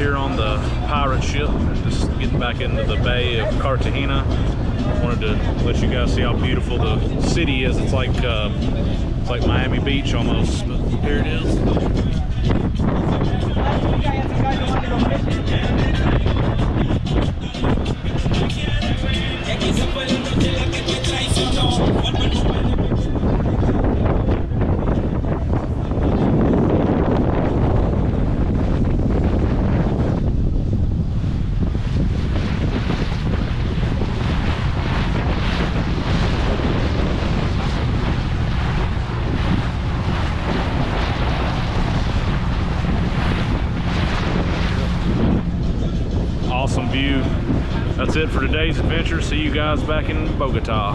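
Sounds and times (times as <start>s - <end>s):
water rushing along hull: 0.0s - 50.9s
wind buffeting microphone: 0.0s - 50.9s.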